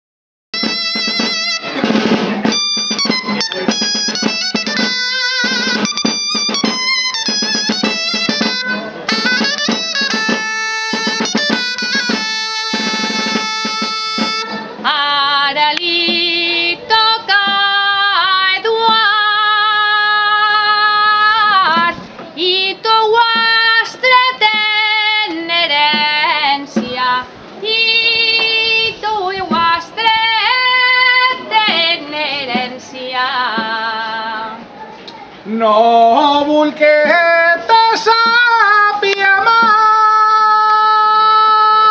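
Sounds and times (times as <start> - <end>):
shawm and drum playing: 0.5 - 41.9.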